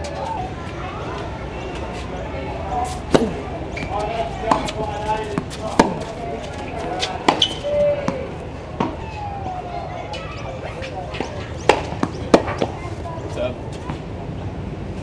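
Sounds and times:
racket hitting tennis ball: 0:02.8 - 0:09.1, 0:10.1 - 0:13.0
tennis ball bouncing: 0:02.8 - 0:09.1, 0:10.1 - 0:13.1.

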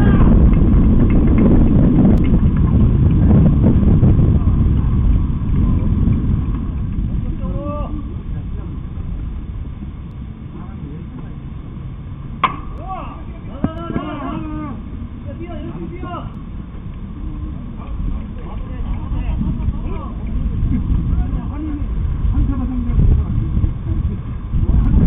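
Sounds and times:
distant shout: 0:00.0 - 0:00.4, 0:12.5 - 0:16.3
players shouting: 0:00.0 - 0:00.4, 0:12.5 - 0:16.3
low rumbling noise: 0:00.0 - 0:25.0
bat cracking a ball: 0:12.4 - 0:12.8.

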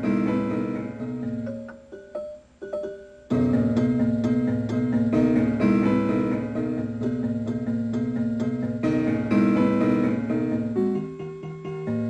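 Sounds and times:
prepared piano notes: 0:00.0 - 0:12.0.

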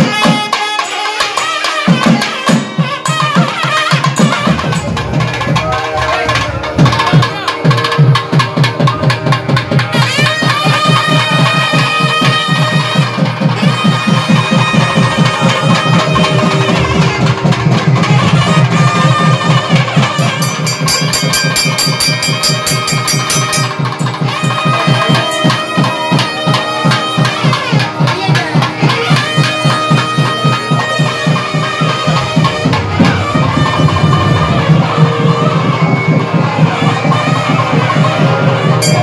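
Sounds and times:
drum beating fast strokes: 0:00.0 - 0:39.0
sliding reed melody: 0:00.4 - 0:39.0.

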